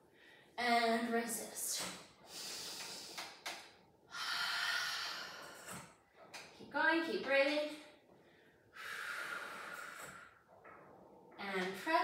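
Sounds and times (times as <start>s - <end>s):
woman breathing heavily: 2.2s - 3.4s, 4.0s - 6.0s, 8.1s - 10.5s.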